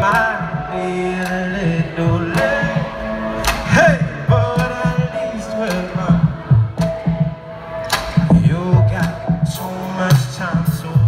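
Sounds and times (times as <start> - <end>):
man singing: 0.0 - 7.3, 8.2 - 11.0
live band playing pop song: 0.0 - 11.0
drum hits: 1.3 - 11.0.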